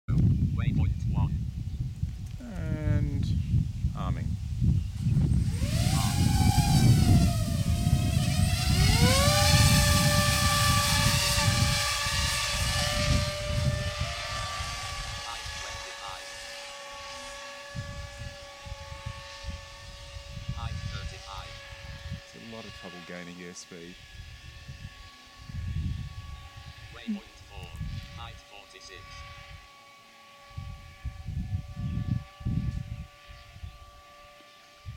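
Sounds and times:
drone motors and propellers whining: 1.5s - 34.9s.

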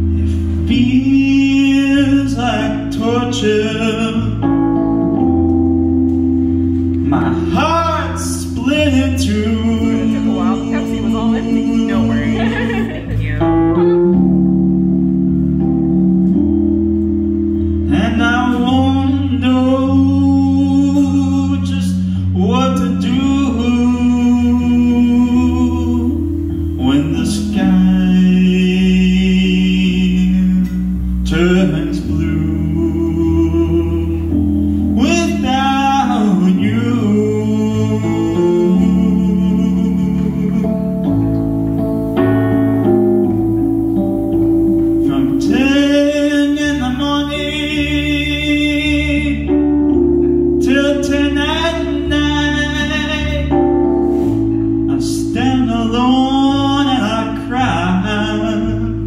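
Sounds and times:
man singing slow song: 0.0s - 5.4s, 7.0s - 14.2s, 17.8s - 59.0s
electric keyboard chords: 0.0s - 59.0s.

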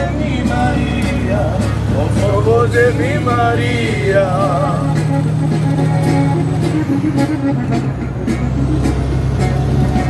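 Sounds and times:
song with a regular beat: 0.0s - 10.0s
truck engine and road noise: 0.0s - 10.0s.

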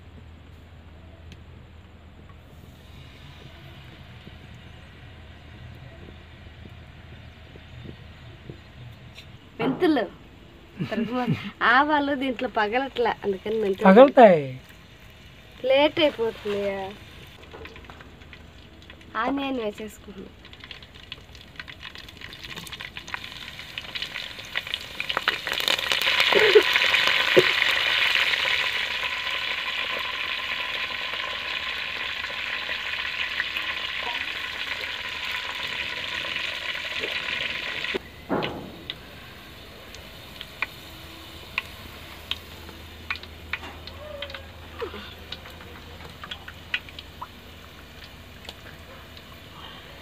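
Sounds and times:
low hum: 0.0s - 13.8s, 32.8s - 50.0s
food sizzling in hot oil: 11.0s - 49.6s.

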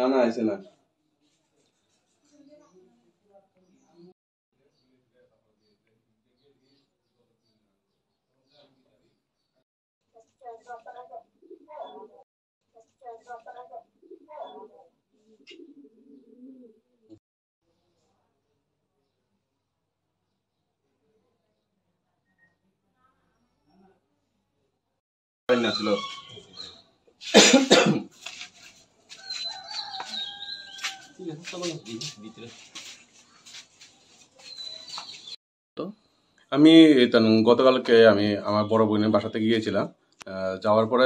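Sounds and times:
pigeon cooing: 10.8s - 12.2s, 13.4s - 17.2s
person coughing: 27.2s - 28.1s
rooster crowing: 29.1s - 32.6s.

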